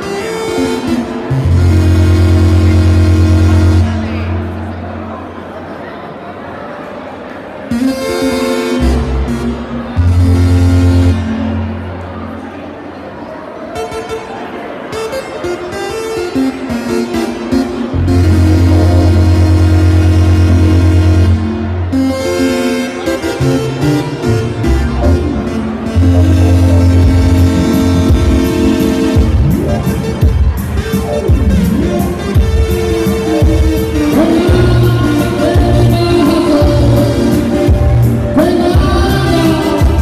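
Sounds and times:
electronic keyboard dance music: 0:00.0 - 0:05.4, 0:07.7 - 0:12.7, 0:13.7 - 0:40.0.

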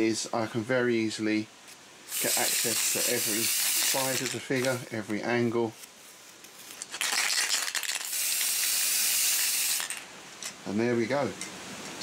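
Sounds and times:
spray-paint can hissing: 0:02.1 - 0:04.8, 0:07.0 - 0:10.0.

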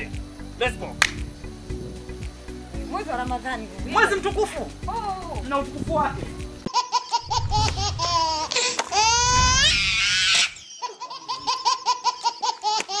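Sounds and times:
high-pitched laughter and squeal: 0:06.7 - 0:13.0.

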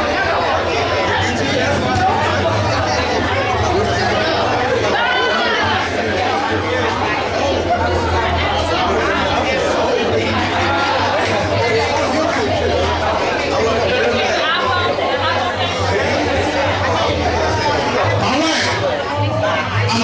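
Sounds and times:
babble of overlapping conversation: 0:00.0 - 0:20.0.

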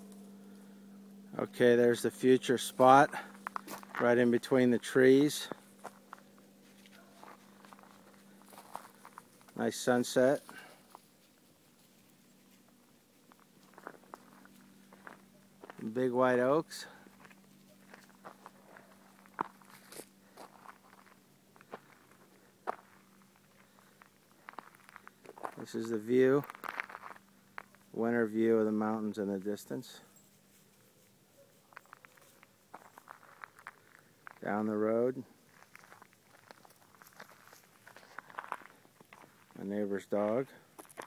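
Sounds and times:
footsteps on dry leaves: 0:02.6 - 0:04.5, 0:05.2 - 0:16.0, 0:16.8 - 0:28.0, 0:30.4 - 0:34.6, 0:35.3 - 0:39.7.

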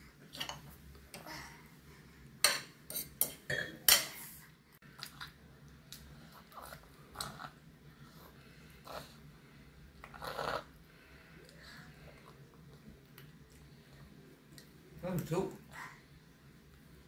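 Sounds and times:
toddler chewing: 0:04.8 - 0:07.6.

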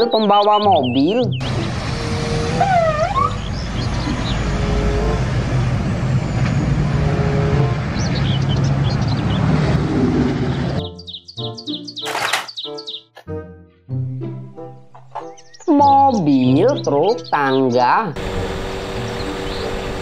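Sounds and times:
children's music: 0:00.0 - 0:05.2, 0:10.8 - 0:18.2
chirping sounds: 0:00.0 - 0:13.2, 0:14.6 - 0:20.0
truck traffic rumble: 0:00.8 - 0:10.9, 0:18.2 - 0:20.0.

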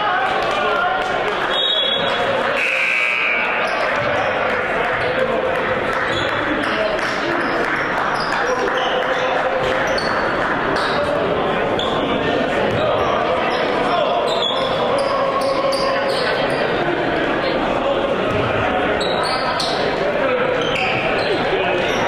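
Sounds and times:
echoing voices and chatter: 0:00.0 - 0:22.0.

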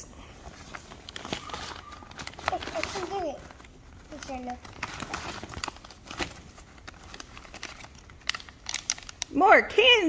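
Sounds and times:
gift bag rustling: 0:00.4 - 0:09.4.

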